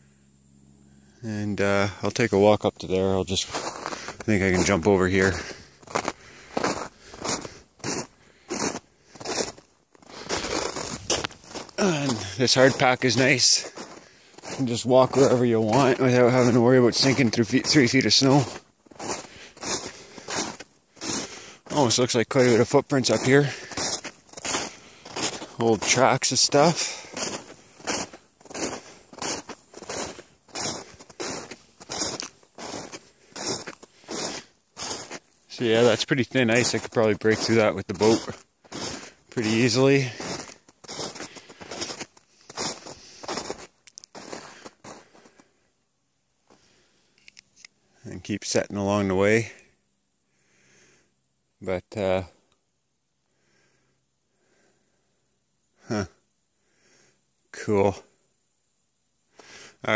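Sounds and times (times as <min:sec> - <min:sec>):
footsteps crunching on snow: 0:01.8 - 0:45.5.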